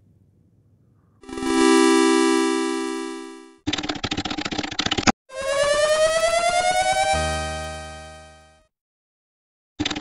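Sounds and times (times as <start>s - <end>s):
synthesizer chord: 1.2s - 3.6s, 5.3s - 8.6s.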